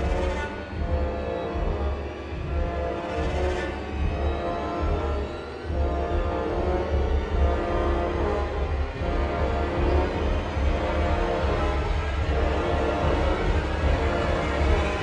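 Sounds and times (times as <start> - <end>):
ominous film score: 0.0 - 15.0.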